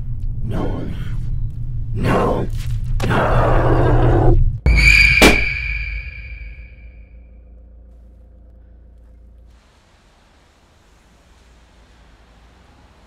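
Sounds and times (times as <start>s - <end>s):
low rumble: 0.0s - 13.0s.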